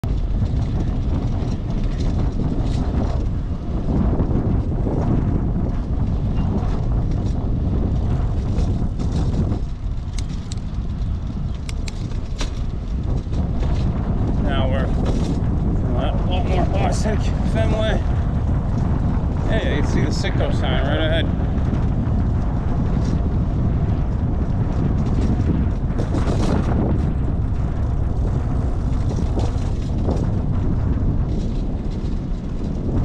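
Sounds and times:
street noise: 0.0 - 33.0
wind buffeting microphone: 0.0 - 33.0
person speaking: 15.9 - 18.1.

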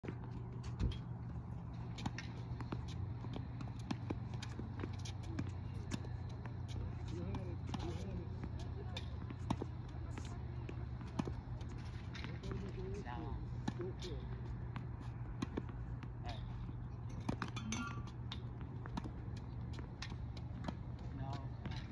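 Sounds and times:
tennis balls bouncing on court: 0.0 - 21.9
tennis balls struck with rackets: 1.9 - 21.9
faint voices talking: 5.1 - 15.0.

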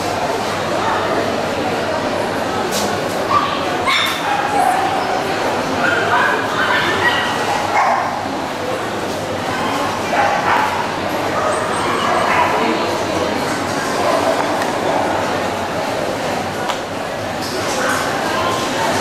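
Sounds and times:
murmur of voices: 0.0 - 19.0
dogs yipping and barking: 3.3 - 5.2, 5.8 - 8.2, 10.0 - 12.7.

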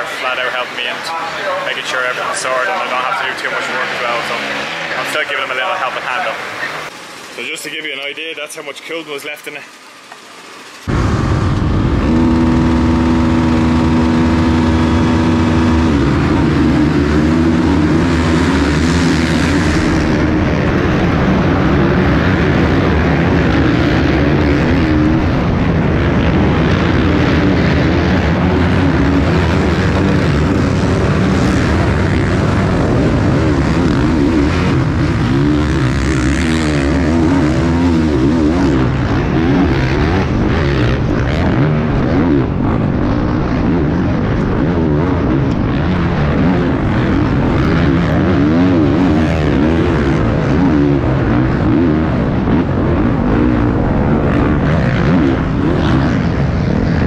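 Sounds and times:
motocross bike engines revving: 0.0 - 57.0.

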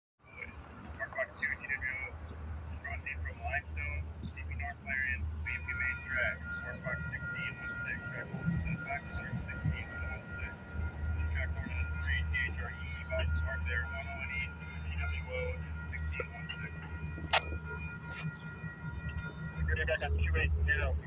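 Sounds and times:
railroad crossing bell ringing: 3.6 - 21.0.

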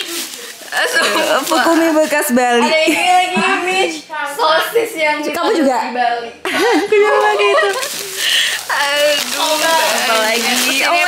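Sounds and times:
plastic bag rustling and crinkling: 0.0 - 2.9, 7.0 - 11.0
women's voices: 0.7 - 4.1, 6.6 - 11.0.

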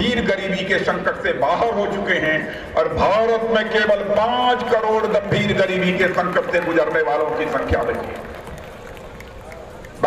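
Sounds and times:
man speaking over loudspeakers: 0.0 - 8.4
outdoor crowd noise: 0.0 - 10.0.

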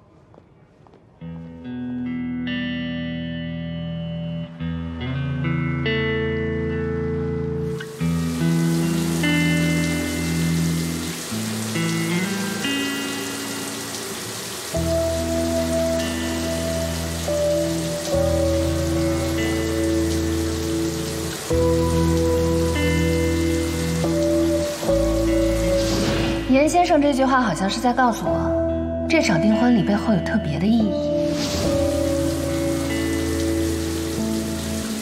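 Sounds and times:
slow music of held chords: 1.1 - 35.0
shower water spraying: 7.7 - 26.5, 31.2 - 35.0.

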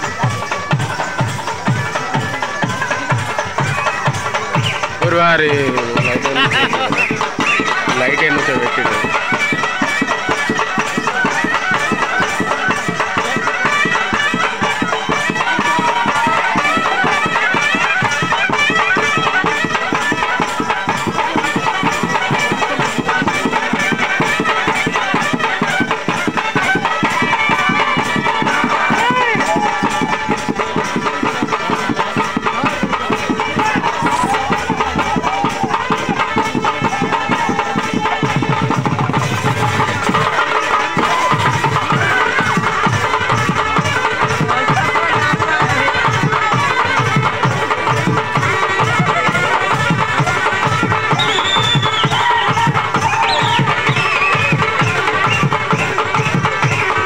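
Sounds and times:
barrel drums beating: 0.0 - 57.0
crowd voices: 0.0 - 57.0
reedy wind instrument melody: 0.0 - 57.0.

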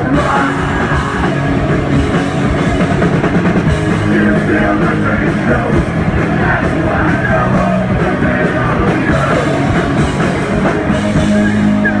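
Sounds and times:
driving drum kit: 0.0 - 12.0
electric bass: 0.0 - 12.0
punk rock band playing live: 0.0 - 12.0.

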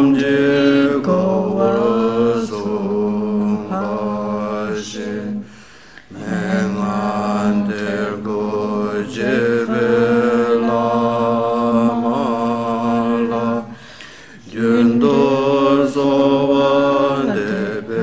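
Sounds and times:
person chanting in long held notes: 0.0 - 5.5, 6.1 - 13.8.

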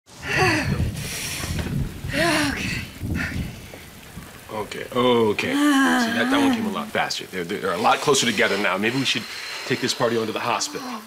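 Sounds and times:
woman crying in pain: 0.2 - 0.9, 2.1 - 2.9, 5.5 - 6.8
breathy exhale: 0.2 - 3.5, 8.1 - 11.0.

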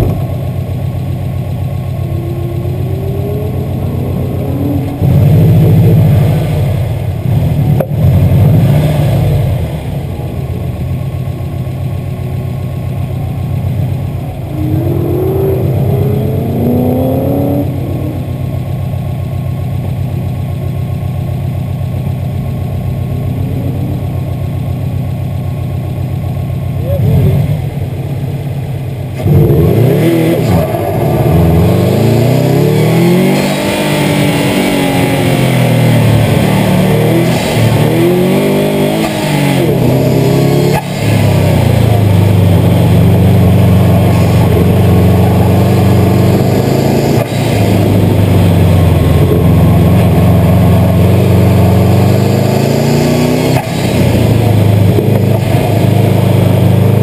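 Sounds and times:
steady low rumble: 0.0 - 29.7
car engines revving: 0.0 - 57.0.

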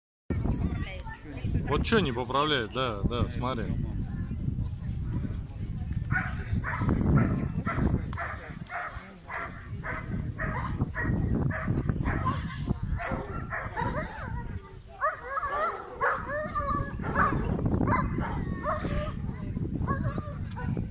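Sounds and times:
large dog barking: 6.1 - 19.2.

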